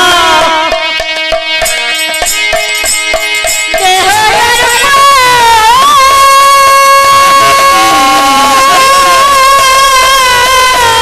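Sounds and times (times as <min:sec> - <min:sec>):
woman singing into a microphone: 0:00.0 - 0:00.9, 0:03.8 - 0:11.0.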